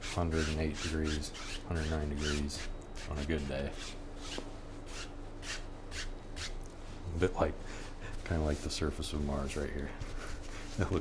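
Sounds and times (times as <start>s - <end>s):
brush scratching on canvas: 0.0s - 6.6s.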